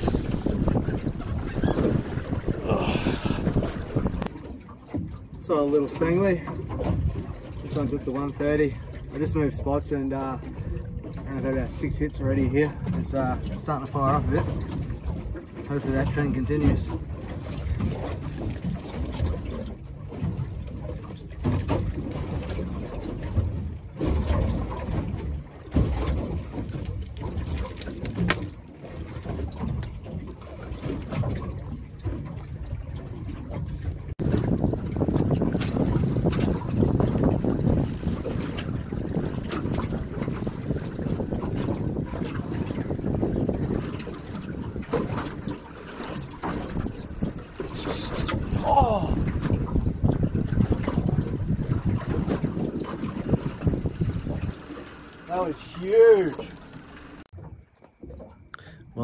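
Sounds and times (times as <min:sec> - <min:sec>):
wind noise on microphone: 0:00.0 - 0:05.3, 0:06.0 - 0:54.9
water slapping a boat hull: 0:00.0 - 0:59.0.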